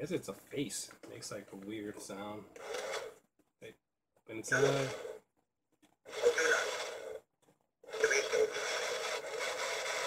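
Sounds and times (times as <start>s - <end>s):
toy speaker noisy voice: 6.1s - 7.0s, 7.9s - 10.0s.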